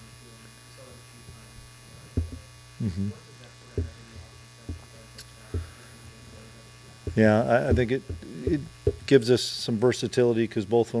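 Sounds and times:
electrical mains hum: 0:00.0 - 0:11.0
short low thump: 0:02.2 - 0:02.4, 0:07.1 - 0:09.1.

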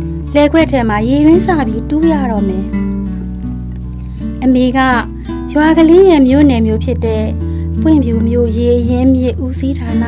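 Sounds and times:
music with held notes: 0:00.0 - 0:10.0
woman narrating: 0:00.3 - 0:02.8, 0:04.4 - 0:10.0.

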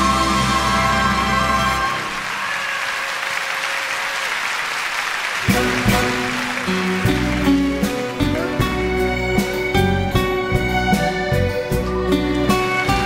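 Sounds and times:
orchestra playing song introduction: 0:00.0 - 0:13.0
audience applauding: 0:01.0 - 0:09.7.

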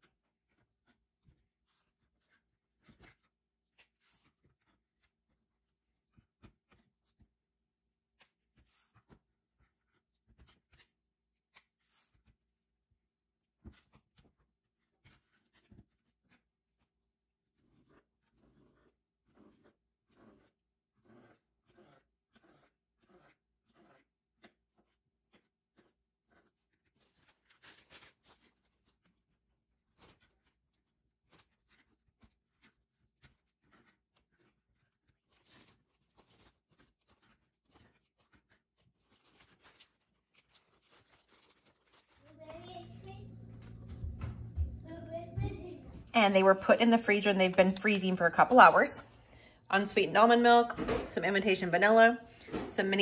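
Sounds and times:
plastic bag being handled: 0:38.1 - 0:46.2
child's voice: 0:42.2 - 0:46.5
steady low hum: 0:42.6 - 0:49.1.

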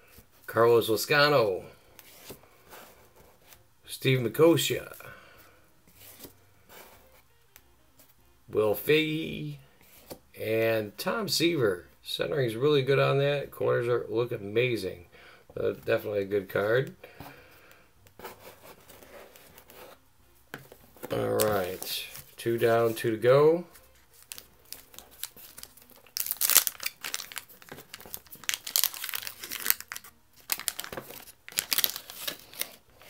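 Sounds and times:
cardboard cards rustling and sliding: 0:01.8 - 0:03.6, 0:04.6 - 0:07.3, 0:09.8 - 0:10.2, 0:18.1 - 0:33.0.

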